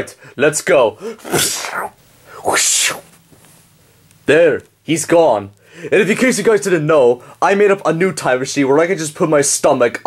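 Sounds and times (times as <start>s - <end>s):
person making hissing noises: 1.0s - 3.2s.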